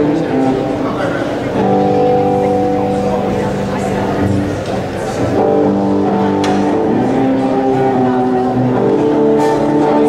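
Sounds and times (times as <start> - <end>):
praise band sustained chords: 0.0 - 10.0.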